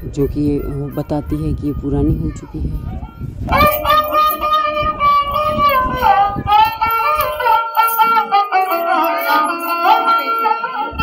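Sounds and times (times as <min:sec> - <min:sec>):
high singing voice: 0:00.0 - 0:11.0.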